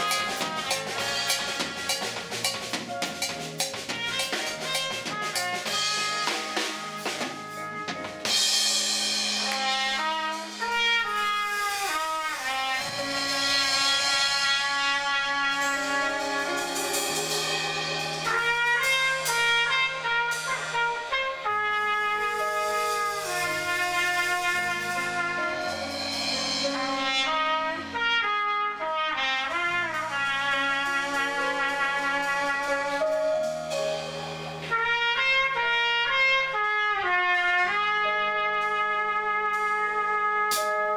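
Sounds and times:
drum kit: 0.0 - 40.9
trumpet melody: 0.0 - 40.9
electric bass: 12.1 - 28.4, 29.5 - 35.6.

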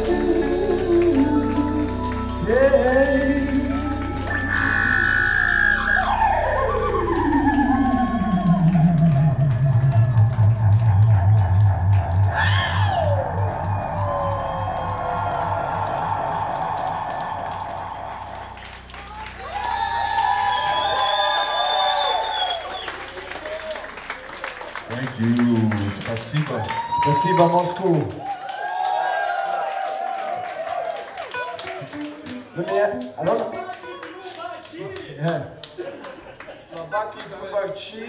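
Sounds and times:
electronic pitch sweeps: 1.3 - 23.2.

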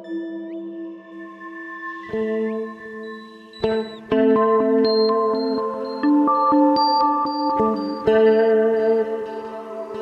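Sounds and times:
ambient drone music: 0.0 - 10.0.

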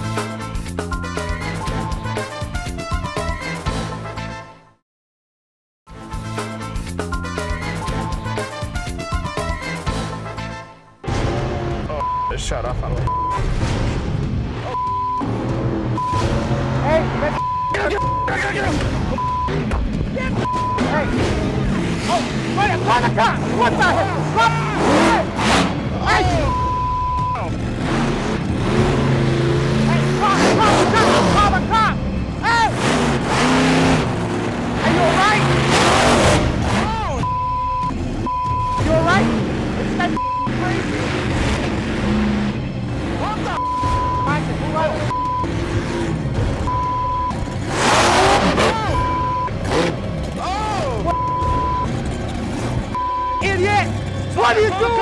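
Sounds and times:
music: 0.0 - 4.8, 5.9 - 24.4
monster truck engine revving: 11.0 - 55.0
censor bleep tones: 12.0 - 12.4, 13.0 - 13.4, 14.7 - 15.3, 17.3 - 18.5, 19.2 - 19.6, 20.4 - 21.0, 26.4 - 27.4, 37.2 - 39.1, 40.1 - 40.6, 43.6 - 44.4, 45.1 - 45.5, 46.6 - 47.4, 48.8 - 49.6, 51.1 - 51.9, 53.0 - 53.5
people shouting: 20.1 - 26.6, 29.9 - 32.8, 36.7 - 37.3, 48.5 - 49.2, 50.4 - 51.2, 53.5 - 55.0.

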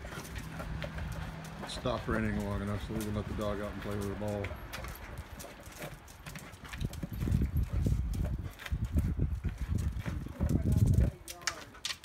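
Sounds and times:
paws scuffing on bricks: 0.0 - 12.0.

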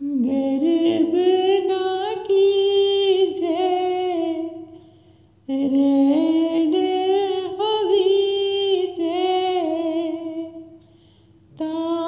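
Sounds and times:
woman singing unaccompanied: 0.0 - 10.9, 11.5 - 12.0.

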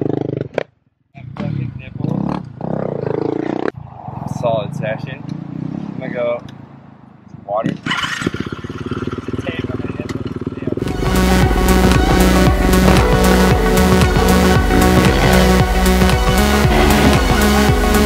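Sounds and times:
dirt bike engine idling: 8.1 - 18.0.

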